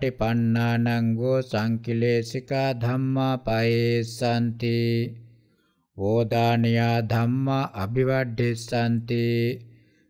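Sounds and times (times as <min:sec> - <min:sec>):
man chanting in monotone: 0:00.0 - 0:05.3, 0:06.0 - 0:09.7.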